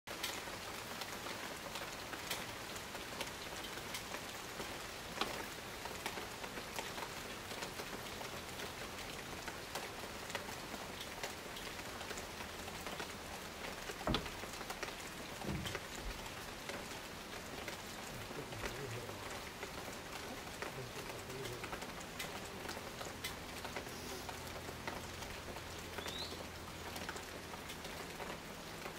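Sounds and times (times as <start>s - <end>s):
close raindrop hits: 0.1s - 28.9s
steady rain: 0.1s - 28.9s.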